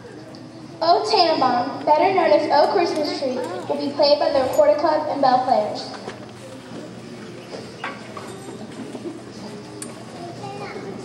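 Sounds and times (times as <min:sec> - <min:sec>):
faint murmuring: 0:01.8 - 0:11.0
footsteps and shuffling: 0:06.0 - 0:10.4.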